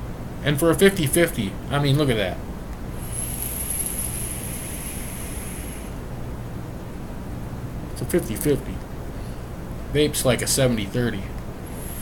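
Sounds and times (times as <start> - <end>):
thin high whine: 2.9 - 6.2
electronic cigarette hissing: 3.0 - 6.0, 11.7 - 12.0.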